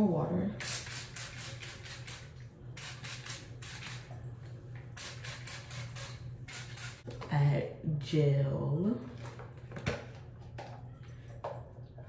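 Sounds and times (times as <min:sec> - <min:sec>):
spray bottle squirting water: 0:00.6 - 0:04.1, 0:05.0 - 0:07.1.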